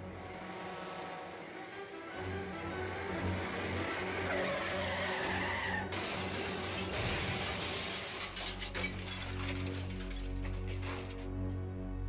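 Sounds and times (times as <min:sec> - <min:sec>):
low background music: 0:00.0 - 0:12.0
car tyres screeching: 0:00.3 - 0:07.0.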